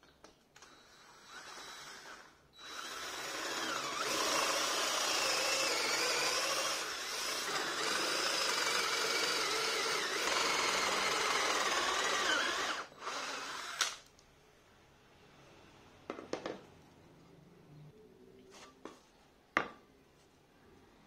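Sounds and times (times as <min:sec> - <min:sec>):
power drill boring into wood: 0:00.6 - 0:14.0.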